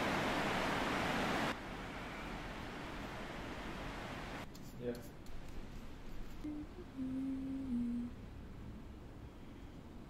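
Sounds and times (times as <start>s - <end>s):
woman humming softly: 6.4s - 8.2s.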